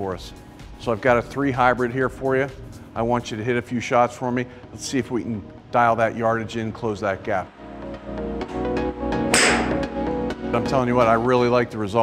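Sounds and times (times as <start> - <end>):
background music: 0.0 - 12.0
golf club striking ball: 9.3 - 9.9.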